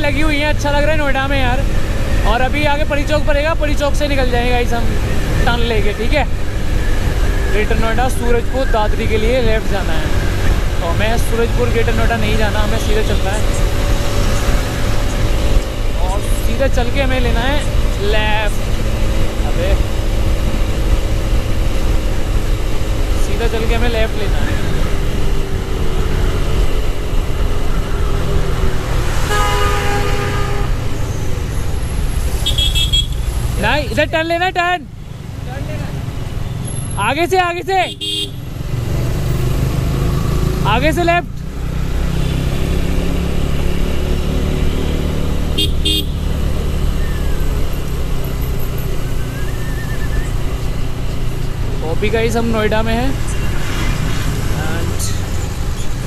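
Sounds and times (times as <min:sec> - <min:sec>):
motorcycle engine: 0:00.0 - 0:56.0
road noise: 0:00.0 - 0:56.0
vehicle horn: 0:29.2 - 0:31.0, 0:32.4 - 0:33.3, 0:37.8 - 0:38.5, 0:45.6 - 0:46.3.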